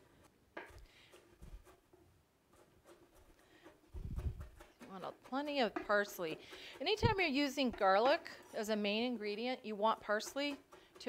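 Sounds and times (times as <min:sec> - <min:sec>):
knife chopping on wooden board: 0:02.6 - 0:08.6, 0:10.0 - 0:11.0.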